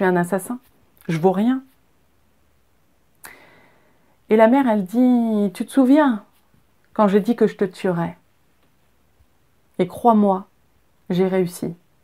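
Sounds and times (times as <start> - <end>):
person speaking: 0.0 - 1.8, 4.3 - 8.3
soft intake of breath: 3.2 - 4.2.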